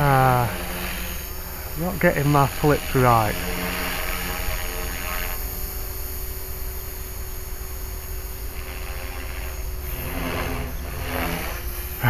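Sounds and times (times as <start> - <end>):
rc helicopter motor hum: 0.0 - 12.0.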